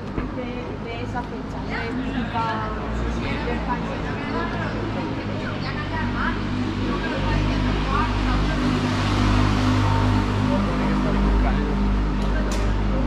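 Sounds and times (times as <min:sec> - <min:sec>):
faint voices talking: 0:00.0 - 0:13.0
vehicle engine drone: 0:00.0 - 0:13.0.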